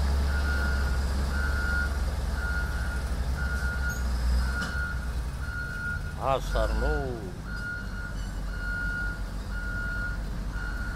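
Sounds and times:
low engine rumble: 0:00.0 - 0:10.9
reversing alarm beeping: 0:00.3 - 0:10.9.

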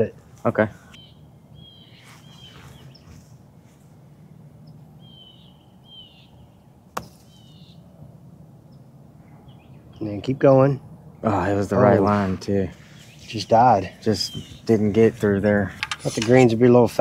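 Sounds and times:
high bird chirps: 0:00.9 - 0:03.2, 0:04.6 - 0:07.9, 0:12.8 - 0:14.9
putter striking golf ball: 0:06.9 - 0:07.3.

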